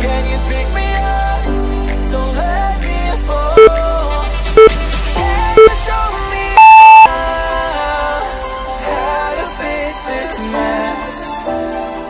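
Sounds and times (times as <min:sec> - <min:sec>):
pop background music: 0:00.0 - 0:12.0
long high timer beep: 0:06.6 - 0:07.1
short countdown beeps: 0:06.6 - 0:07.1.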